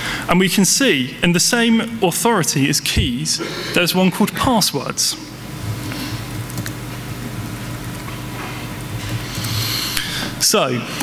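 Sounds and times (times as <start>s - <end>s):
microphone hiss and hum: 0.0s - 11.0s.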